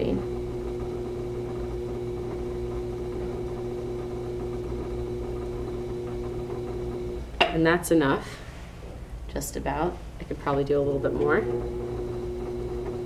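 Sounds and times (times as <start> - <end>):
pottery wheel motor hum: 0.0 - 8.2, 10.1 - 13.0.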